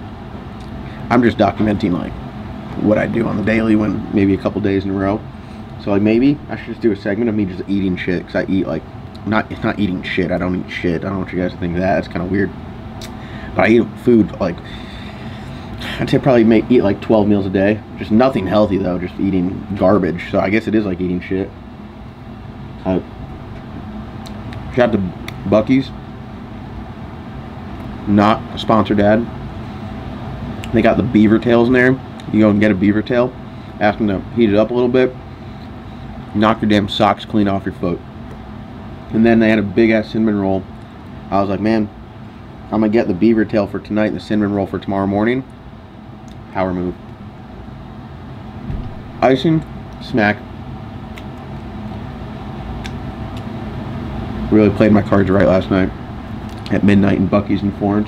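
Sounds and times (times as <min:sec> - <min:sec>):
low room hum: 0:00.0 - 0:58.0.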